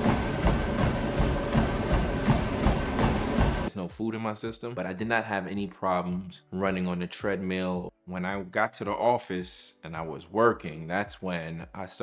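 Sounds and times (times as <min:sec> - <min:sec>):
feet running on treadmill: 0:00.0 - 0:03.7
music playing: 0:00.0 - 0:04.1.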